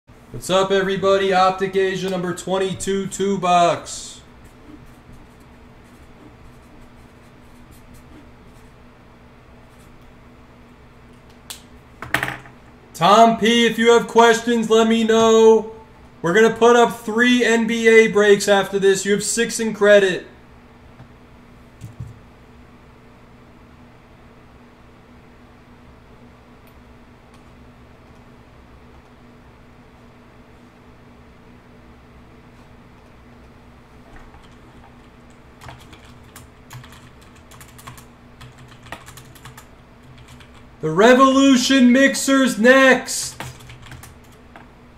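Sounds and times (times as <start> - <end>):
low electrical hum: 0.1 - 44.9.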